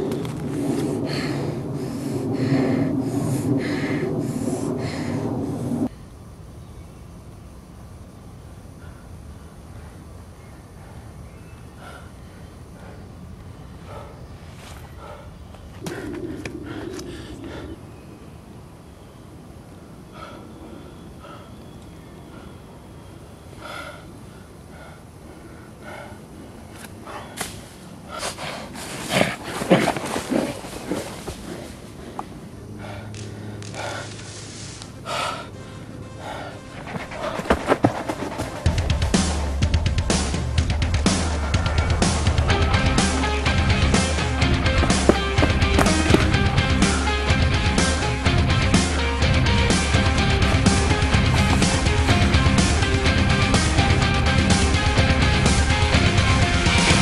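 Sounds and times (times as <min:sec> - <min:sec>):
man breathing hard: 0:00.0 - 0:06.1, 0:08.6 - 0:17.9, 0:20.1 - 0:22.9, 0:23.5 - 0:39.0, 0:40.3 - 0:54.9
steady low hum: 0:00.0 - 0:57.0
person panting and grunting: 0:15.0 - 0:17.8, 0:35.0 - 0:39.0, 0:40.5 - 0:48.3, 0:49.3 - 0:54.6
dove cooing: 0:15.0 - 0:17.9
footsteps running through dry leaves: 0:36.8 - 0:39.2.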